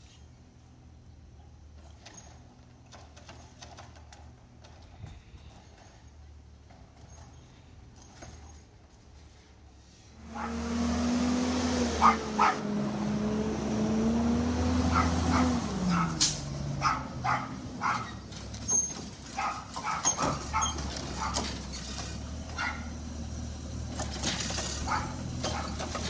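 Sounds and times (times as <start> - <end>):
garbage truck engine whining: 10.2 - 26.0
dog barking: 10.4 - 10.6, 12.0 - 12.7, 14.9 - 16.2, 16.8 - 18.2, 19.4 - 21.5, 22.5 - 22.9, 24.8 - 25.8.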